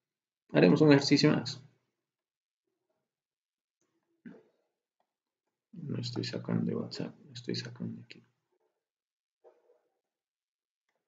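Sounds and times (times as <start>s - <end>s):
man speaking: 5.8s - 8.2s.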